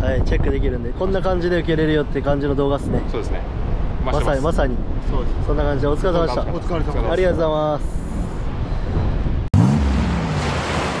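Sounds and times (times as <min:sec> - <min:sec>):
wind rumbling on microphone: 0:00.0 - 0:09.5
crashing wave surf: 0:09.6 - 0:11.0.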